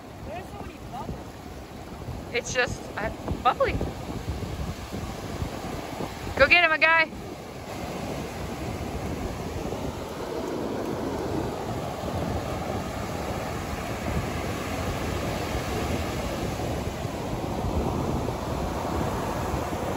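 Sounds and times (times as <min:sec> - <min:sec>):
ocean surf breaking: 0:00.0 - 0:19.9.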